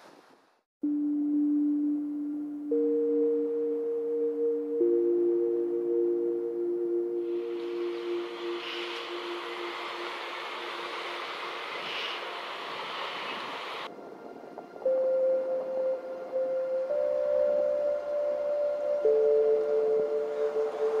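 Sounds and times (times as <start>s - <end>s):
ambient bell-like music tones: 0.8s - 11.5s, 14.1s - 21.0s
wind and surf rushing: 7.3s - 15.8s.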